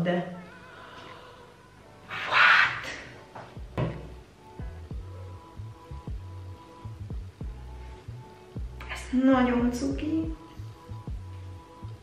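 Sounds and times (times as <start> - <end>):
music with low thumping beat: 3.4 - 8.9, 9.6 - 12.0.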